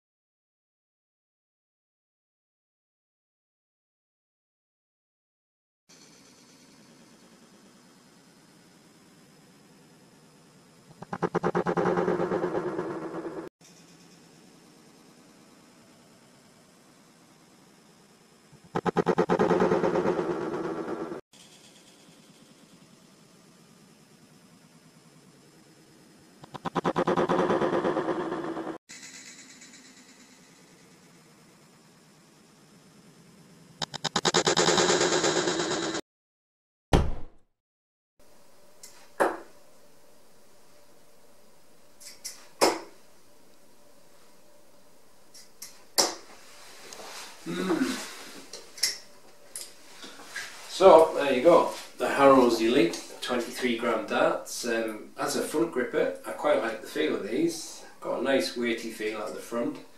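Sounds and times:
faint steady hum: 38.2 - 59.9.

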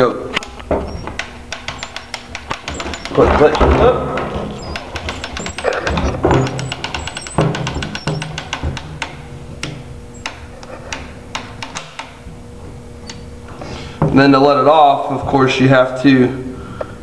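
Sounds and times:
crossbow crank ratchet clicking: 1.1 - 3.2.

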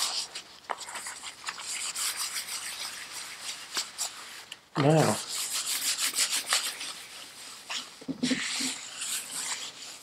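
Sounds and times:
paper towel wiping workbench: 1.0 - 10.0.

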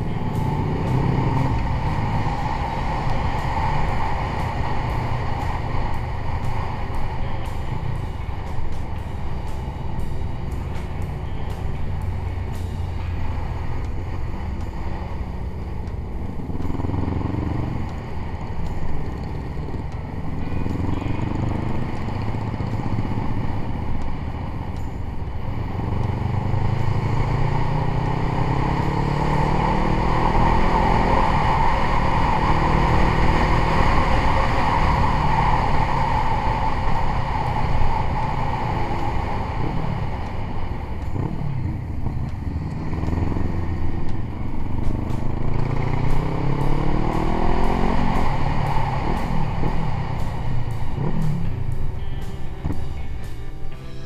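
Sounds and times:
motorcycle engine accelerating: 0.0 - 54.0
road and wind noise: 0.0 - 54.0.

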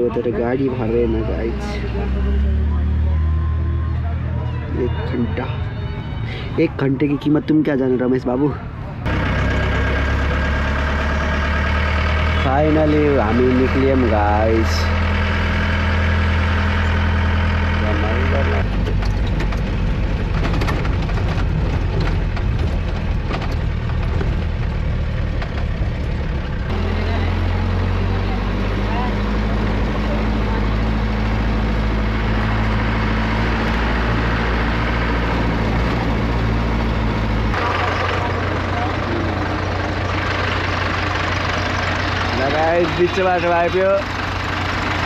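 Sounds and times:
truck engine running: 0.0 - 45.0.

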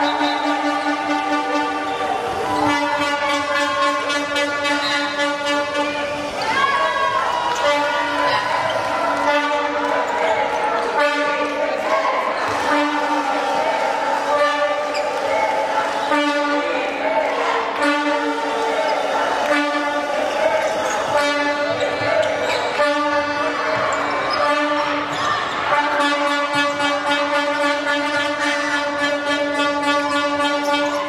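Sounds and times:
horn blowing low note: 0.0 - 6.3, 25.6 - 31.0.

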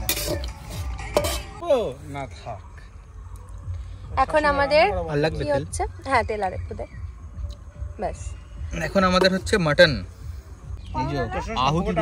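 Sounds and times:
metal spatula scraping a pan: 0.0 - 1.6.

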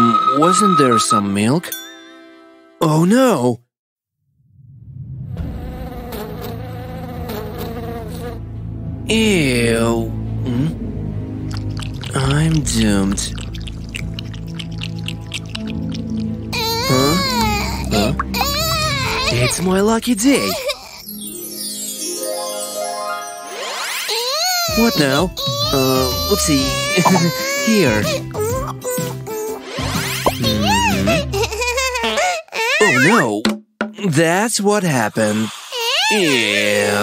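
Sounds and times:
voice: 0.0 - 1.8, 2.8 - 3.6, 9.1 - 10.8, 12.1 - 13.4, 16.9 - 18.3, 19.2 - 20.7, 24.7 - 28.2, 30.3 - 31.3, 32.8 - 37.0
cartoon flies buzzing: 5.6 - 8.4, 23.5 - 24.7
magic sparkle chime: 21.0 - 24.2.

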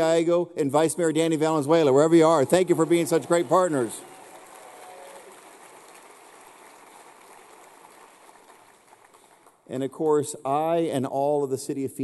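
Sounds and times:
faint audience applause: 2.0 - 9.7.

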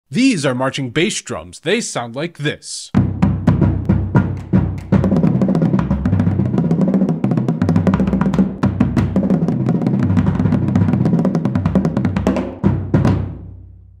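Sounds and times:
marching bass drums: 2.9 - 13.6.

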